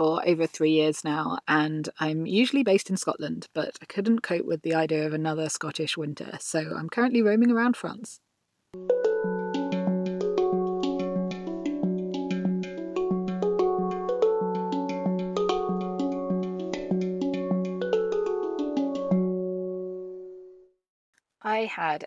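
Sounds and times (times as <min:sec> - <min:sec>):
handpan melody: 0:08.8 - 0:20.0.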